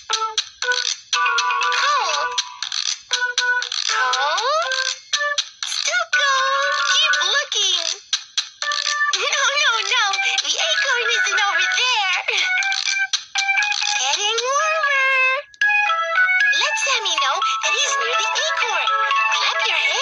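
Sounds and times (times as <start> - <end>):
electronic children's tune: 0.0 - 20.0.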